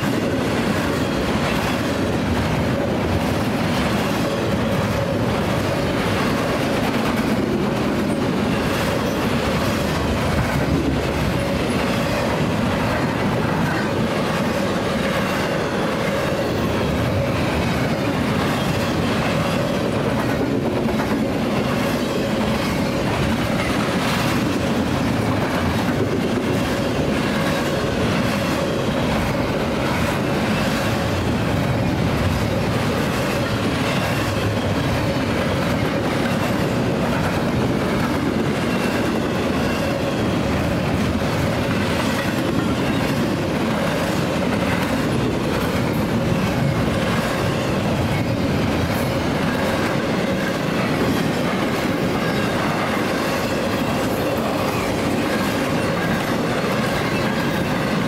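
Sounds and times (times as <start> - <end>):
freight train rumbling past: 0.0 - 58.0
wheels clacking over rail joints: 0.0 - 58.0.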